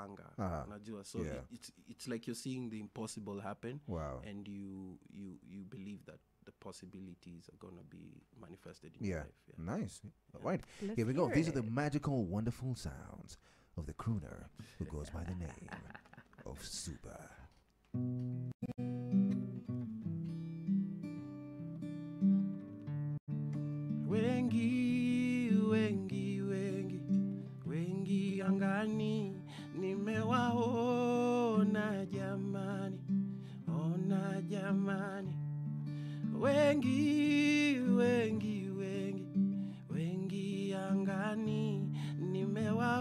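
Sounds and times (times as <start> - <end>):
man singing: 10.8 - 11.6, 24.1 - 35.4, 36.3 - 43.0
acoustic guitar strumming: 18.0 - 43.0.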